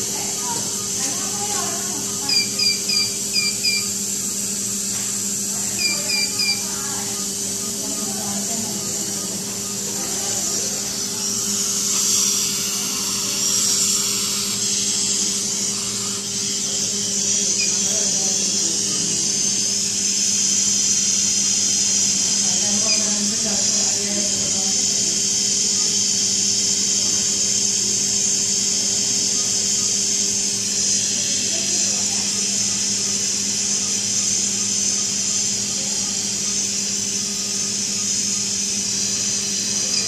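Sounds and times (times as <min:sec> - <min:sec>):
short high alarm beeps: 0:02.3 - 0:04.0, 0:05.8 - 0:06.6.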